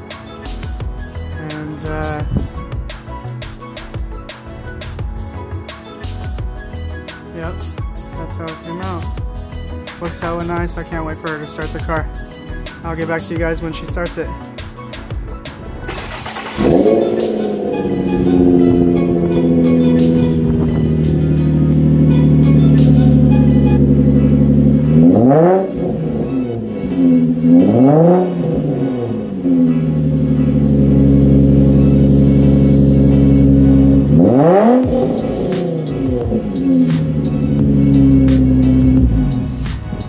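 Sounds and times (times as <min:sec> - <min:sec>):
car engine idling: 0:13.5 - 0:40.0
engine revving: 0:15.5 - 0:40.0.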